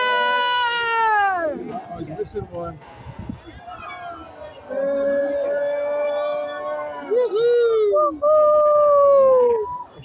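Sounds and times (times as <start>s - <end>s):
person cheering with whoops: 5.0s - 9.8s.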